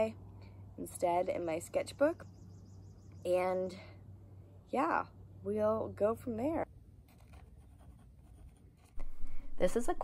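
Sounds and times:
pencil scratching on paper: 0:07.1 - 0:09.2.

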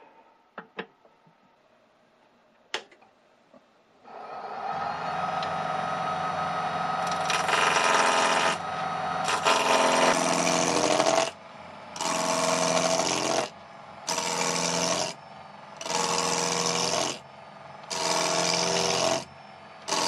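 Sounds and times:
lathe motor hum: 0:04.1 - 0:20.0
lathe tool scraping wood: 0:06.8 - 0:11.4, 0:12.0 - 0:15.2, 0:15.8 - 0:20.0.

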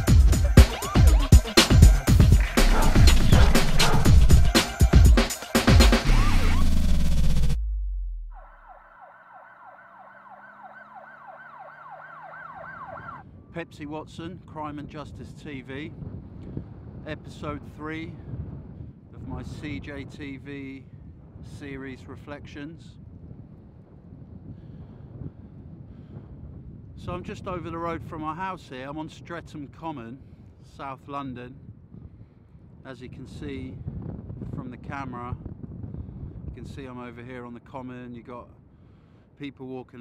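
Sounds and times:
electronic intro music: 0:00.0 - 0:12.0
emergency siren yelping: 0:06.0 - 0:07.0, 0:08.2 - 0:13.2
wind blowing across microphone: 0:12.9 - 0:39.4.

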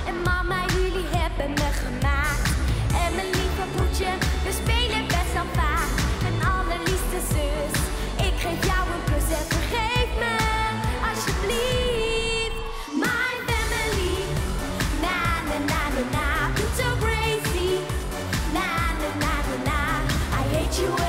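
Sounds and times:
backing track with heavy beat: 0:00.0 - 0:12.2, 0:12.9 - 0:21.0
girl singing into a microphone: 0:00.0 - 0:14.3.

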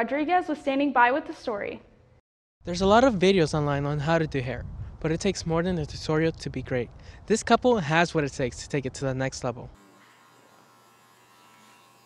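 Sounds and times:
electric hair clippers buzzing: 0:09.8 - 0:12.0.

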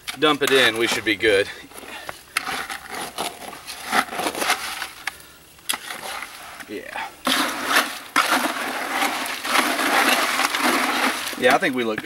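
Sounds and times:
concrete scraped in plastic bucket: 0:00.1 - 0:05.0, 0:05.7 - 0:12.0.

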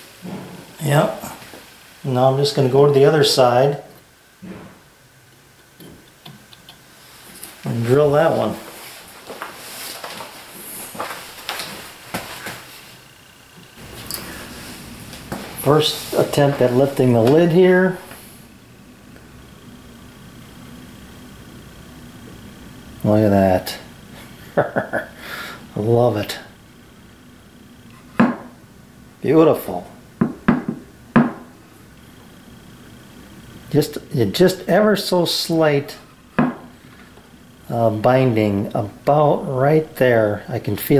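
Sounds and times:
tools and wood knocking on workbench: 0:28.2 - 0:28.5, 0:30.2 - 0:31.5, 0:36.4 - 0:36.7.

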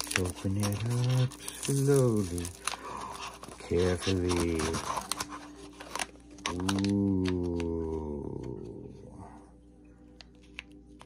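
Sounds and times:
paper and plastic crinkling: 0:00.0 - 0:08.0.

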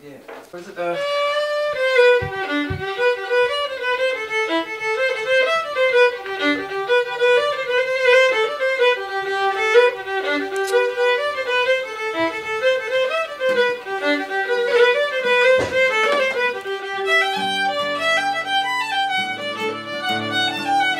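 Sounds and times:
solo fiddle playing a fast tune: 0:00.6 - 0:20.9.

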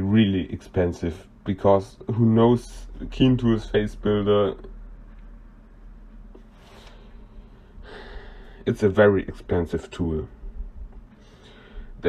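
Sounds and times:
faint low hum: 0:00.0 - 0:12.0
man breathing in: 0:06.6 - 0:08.6, 0:11.2 - 0:12.0.

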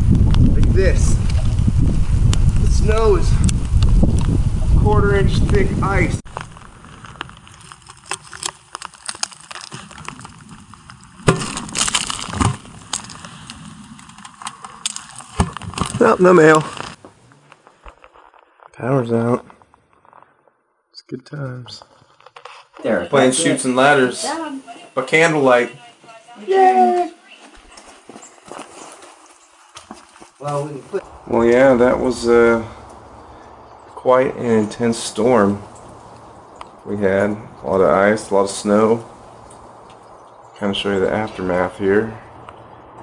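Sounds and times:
ice cracking and scraping: 0:06.2 - 0:20.4
ice crackling and snapping: 0:06.2 - 0:20.4, 0:28.5 - 0:37.4
footsteps crunching in snow: 0:24.6 - 0:32.5.

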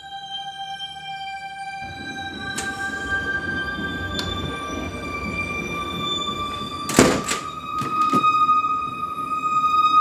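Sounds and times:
music score of held tones: 0:00.0 - 0:10.0
door shutting with a thump: 0:06.9 - 0:08.4.

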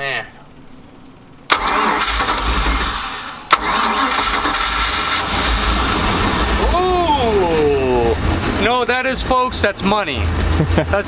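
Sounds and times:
boat engine running: 0:05.4 - 0:11.0.

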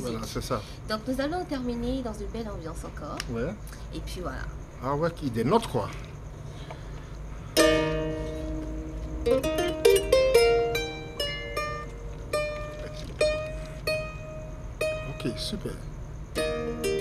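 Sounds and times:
kora plucked: 0:07.6 - 0:15.3, 0:16.4 - 0:17.0.

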